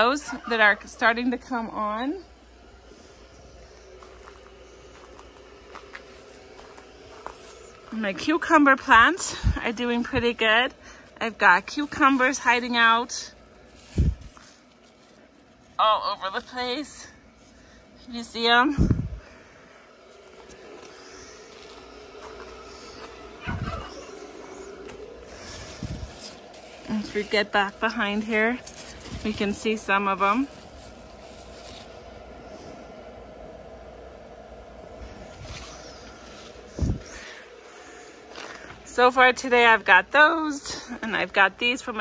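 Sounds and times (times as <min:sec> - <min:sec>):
faint steady hum: 0:00.0 - 0:42.0
faint rustling: 0:20.0 - 0:32.6.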